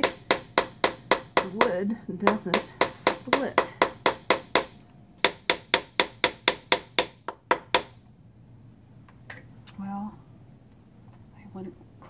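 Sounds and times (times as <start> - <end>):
mallet tapping wooden handle: 0.0 - 8.0.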